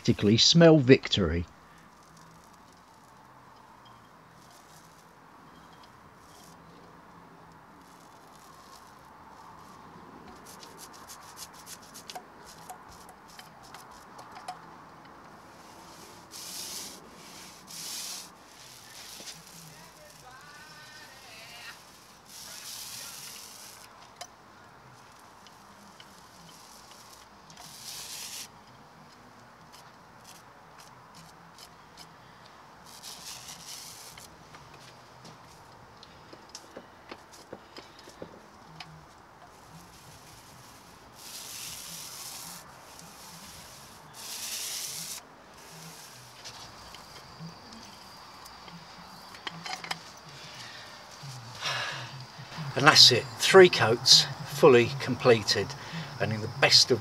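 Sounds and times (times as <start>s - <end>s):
paint roller rubbing on steel: 1.8s - 3.4s, 4.2s - 6.8s, 7.8s - 14.5s, 15.3s - 24.1s, 24.8s - 28.7s, 32.8s - 35.6s, 38.9s - 51.6s.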